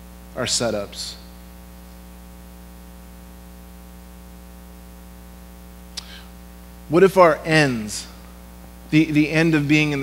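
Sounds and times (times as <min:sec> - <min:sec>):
electrical mains hum: 0:00.0 - 0:10.0
man speaking: 0:00.3 - 0:01.4, 0:06.9 - 0:08.3, 0:08.9 - 0:10.0.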